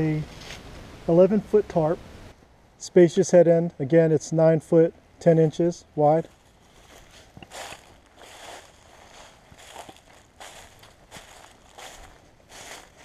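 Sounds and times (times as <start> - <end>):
footsteps crunching dry leaves: 6.3 - 13.0.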